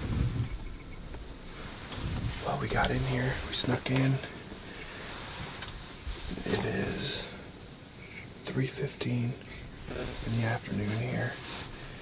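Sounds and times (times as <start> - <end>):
wind rumble on microphone: 0.0 - 3.9
insects chirping: 0.0 - 12.0.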